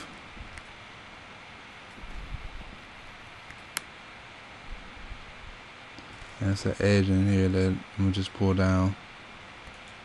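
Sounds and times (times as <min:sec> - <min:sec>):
room tone and microphone hiss: 0:00.0 - 0:10.0.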